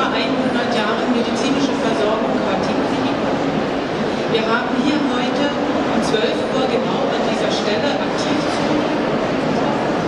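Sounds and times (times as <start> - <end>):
woman speaking over public address: 0.0 - 3.5, 4.2 - 9.7
steady background noise: 0.0 - 10.0.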